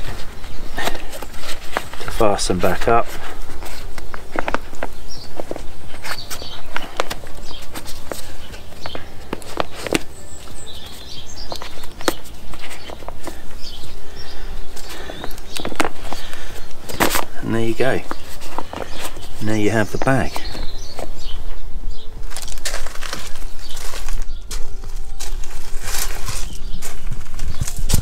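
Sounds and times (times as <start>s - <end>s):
bag closure rustling and crinkling: 0.0s - 28.0s.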